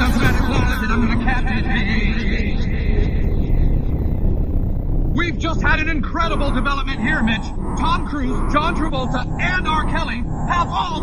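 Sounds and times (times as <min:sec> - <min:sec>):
person speaking: 0:00.0 - 0:01.4
loud low rumble: 0:00.0 - 0:11.0.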